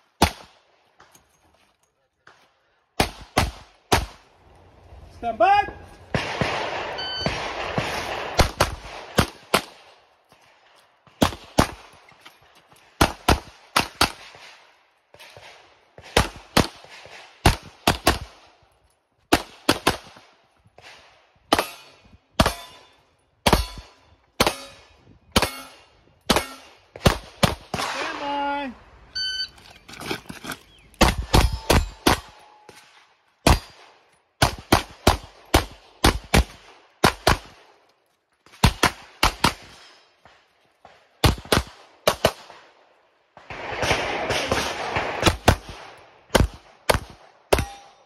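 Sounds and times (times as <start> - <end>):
pistol shots: 0.2 - 0.6, 3.0 - 4.2, 6.0 - 10.0, 19.3 - 28.3, 30.9 - 37.7, 38.6 - 42.7, 43.3 - 48.0
person speaking: 5.2 - 5.9
shot timer beep: 7.0 - 7.3, 29.1 - 29.6.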